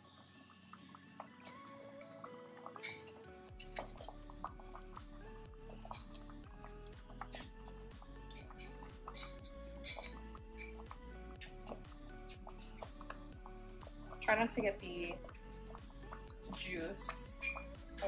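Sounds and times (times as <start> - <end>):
melody over steady beat: 4.1 - 18.0.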